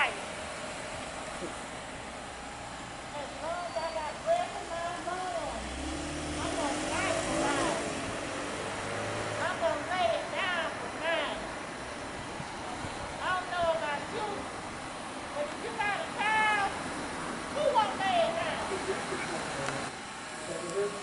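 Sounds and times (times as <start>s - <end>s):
car engine low rumble: 0.0s - 21.0s
people talking: 3.2s - 5.6s, 6.4s - 7.9s, 9.4s - 11.5s, 13.2s - 14.5s, 15.4s - 16.7s, 17.6s - 19.9s, 20.5s - 21.0s.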